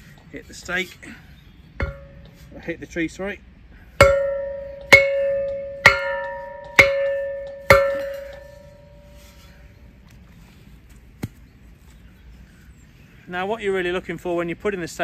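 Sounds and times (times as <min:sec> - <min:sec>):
steel post driver clanging: 0:04.0 - 0:09.2.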